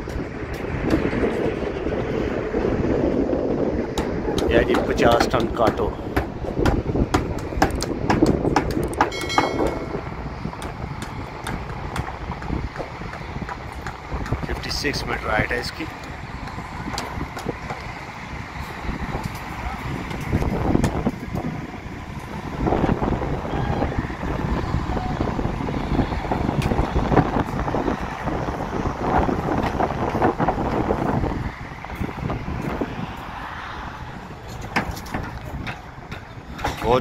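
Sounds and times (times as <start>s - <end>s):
vehicle engines rumbling: 0.0s - 37.0s
wind buffeting microphone: 0.0s - 37.0s.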